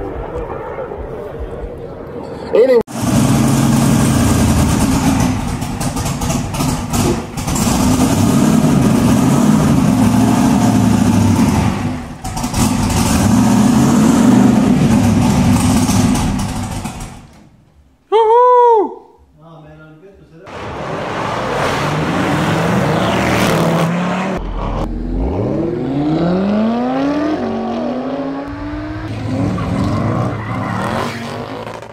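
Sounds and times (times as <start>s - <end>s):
loud rough car engine: 2.9s - 17.3s, 20.5s - 31.9s
tone rising and falling: 22.8s - 31.8s.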